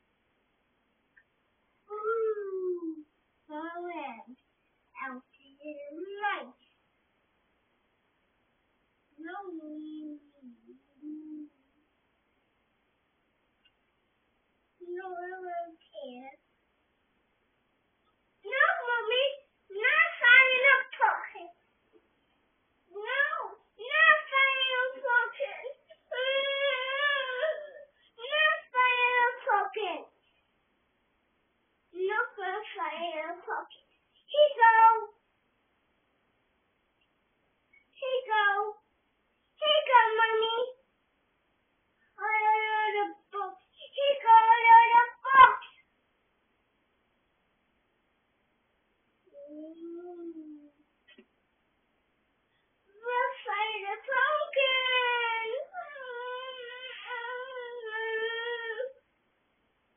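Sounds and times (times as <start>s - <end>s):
toddler babbling: 49.4s - 50.8s, 54.7s - 59.0s.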